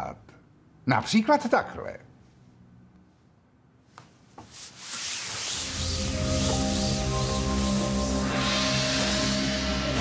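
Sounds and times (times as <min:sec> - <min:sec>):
cloth dragged across a table: 0:04.3 - 0:09.4
music with held tones: 0:05.6 - 0:10.0.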